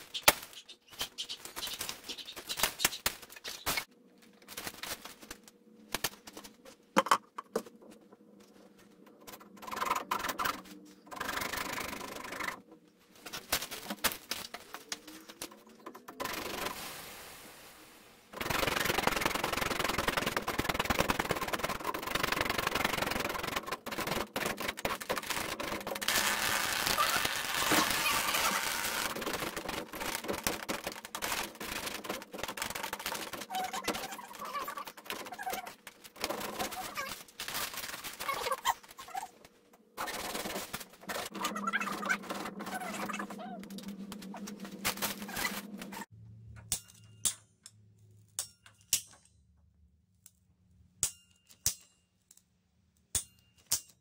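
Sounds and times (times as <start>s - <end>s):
rustling and rapid clicking: 0.0s - 6.6s, 18.4s - 46.1s.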